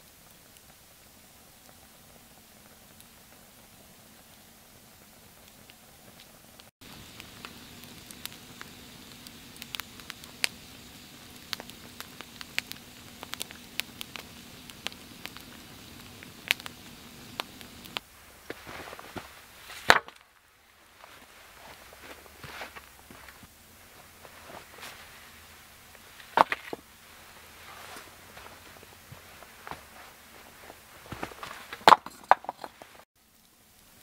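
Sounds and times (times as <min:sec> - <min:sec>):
sharp cracks: 0:06.8 - 0:18.0, 0:19.8 - 0:20.3
rustling on forest floor: 0:06.8 - 0:33.1.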